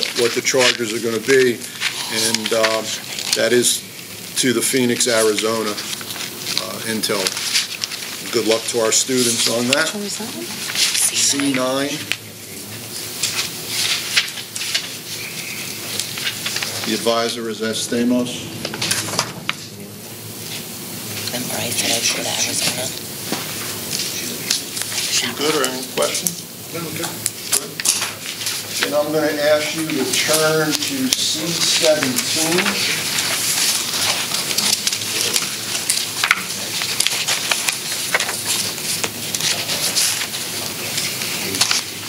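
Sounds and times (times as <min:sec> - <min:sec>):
pages being turned: 0:00.0 - 0:03.7, 0:04.4 - 0:09.9, 0:13.0 - 0:17.3, 0:27.4 - 0:42.0
paper rustling and shuffling: 0:00.0 - 0:03.8, 0:04.4 - 0:12.2, 0:13.0 - 0:17.4, 0:18.7 - 0:19.6, 0:21.6 - 0:42.0
paper crinkle: 0:00.0 - 0:12.2, 0:12.9 - 0:17.4, 0:27.3 - 0:42.0.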